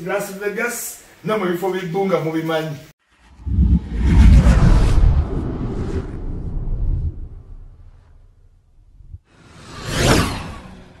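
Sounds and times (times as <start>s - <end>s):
whoosh sound effect: 3.1s - 9.2s.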